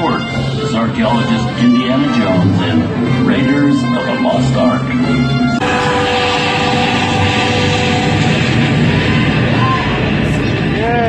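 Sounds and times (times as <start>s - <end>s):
dramatic soundtrack music: 0.0s - 11.0s
steady rushing noise: 0.0s - 11.0s
held tones: 5.0s - 10.4s.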